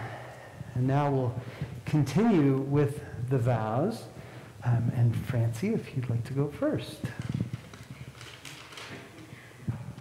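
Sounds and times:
microphone handling rustle: 0:07.0 - 0:08.2.

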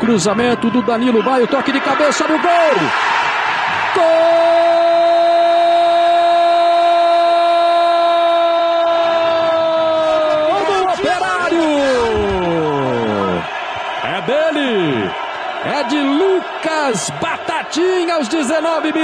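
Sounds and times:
commentator shouting goal: 0:10.0 - 0:13.4, 0:14.0 - 0:19.0.

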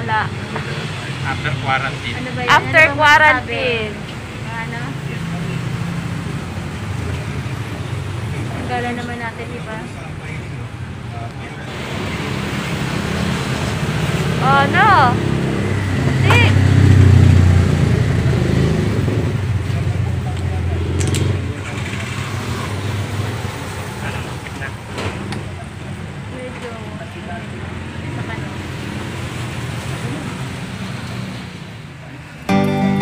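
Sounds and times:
vehicle engine rumbling: 0:00.0 - 0:32.5
street traffic noise: 0:00.0 - 0:33.0.

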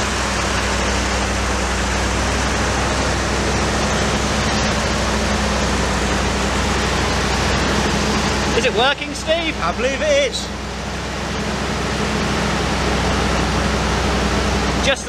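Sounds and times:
generator engine running: 0:00.0 - 0:15.0.

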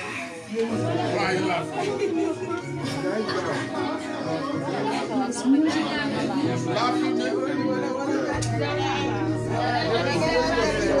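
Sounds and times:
background music: 0:00.0 - 0:11.0
people chatting: 0:00.0 - 0:11.0.

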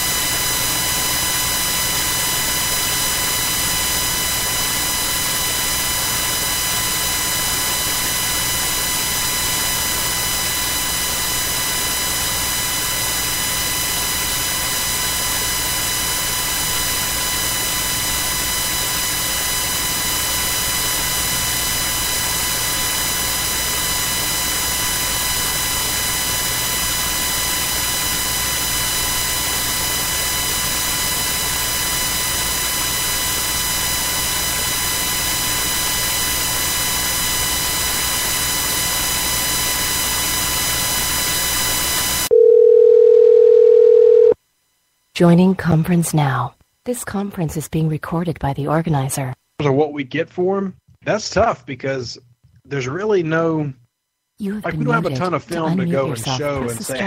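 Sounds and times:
telephone line hiss and buzz: 0:00.0 - 0:45.0.

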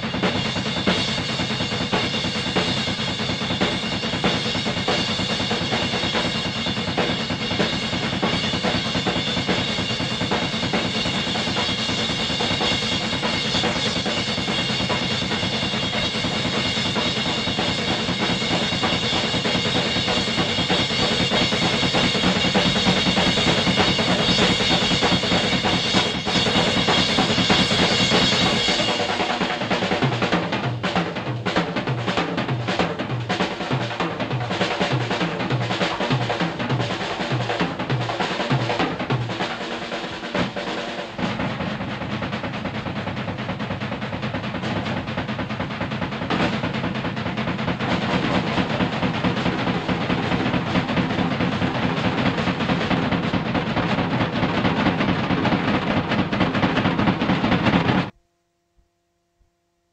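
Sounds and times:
rock drum solo: 0:00.0 - 0:58.2.

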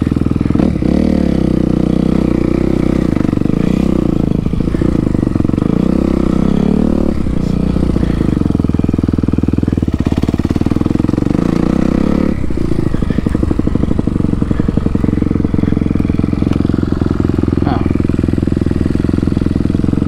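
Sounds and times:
dirt bike engine under throttle: 0:00.0 - 0:20.0.

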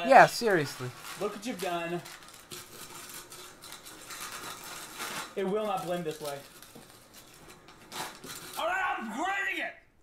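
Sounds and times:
chips rustling in glass jar: 0:00.0 - 0:08.7.

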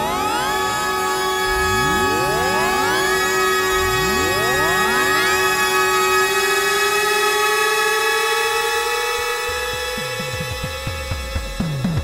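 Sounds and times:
synthesizer tone rising in pitch: 0:00.0 - 0:10.9.

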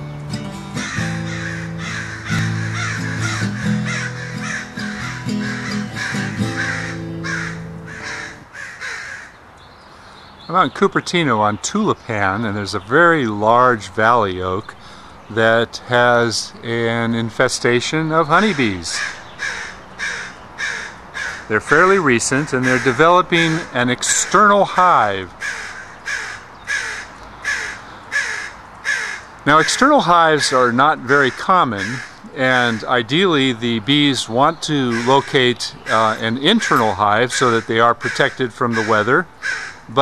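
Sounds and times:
acoustic guitar music: 0:00.0 - 0:08.5, 0:21.5 - 0:25.4, 0:29.5 - 0:39.3
crows cawing: 0:00.8 - 0:10.4, 0:14.8 - 0:15.2, 0:18.3 - 0:33.3, 0:34.8 - 0:40.0
bird harsh calls: 0:00.8 - 0:40.0.

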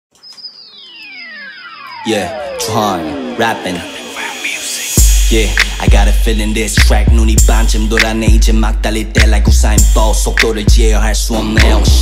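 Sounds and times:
falling electronic tone sweep: 0:00.2 - 0:06.1.

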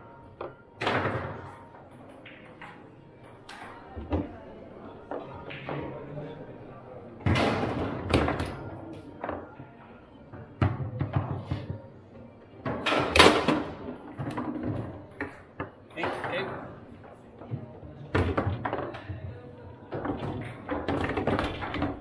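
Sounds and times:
background voices chattering: 0:01.6 - 0:12.7.

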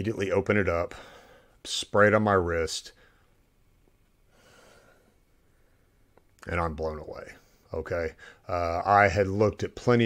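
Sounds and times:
faint breath drawn in: 0:00.9 - 0:01.6, 0:04.3 - 0:06.1.

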